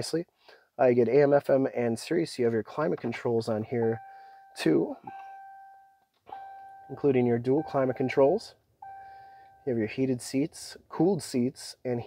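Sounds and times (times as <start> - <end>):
soft electronic beep tones: 3.8 - 9.8.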